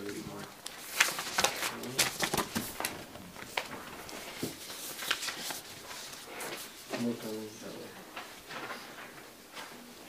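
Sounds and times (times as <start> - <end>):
paper rustling and crackling: 0.0 - 10.0.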